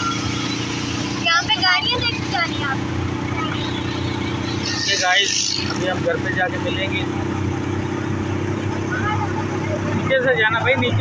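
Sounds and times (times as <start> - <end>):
vehicle engine running: 0.0 - 11.0.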